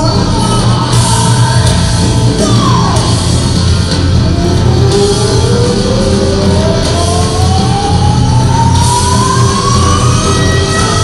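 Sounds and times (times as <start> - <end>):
live rock band playing: 0.0 - 11.0.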